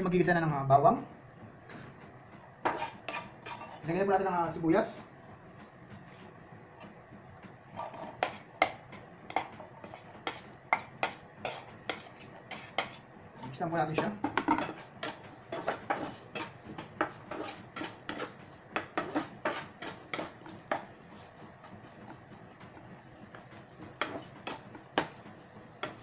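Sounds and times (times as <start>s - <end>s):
spatula scraping frying pan: 2.6s - 4.0s, 7.6s - 26.0s.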